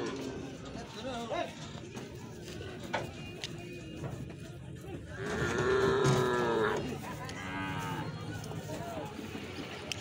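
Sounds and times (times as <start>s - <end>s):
cattle mooing: 5.2s - 8.1s.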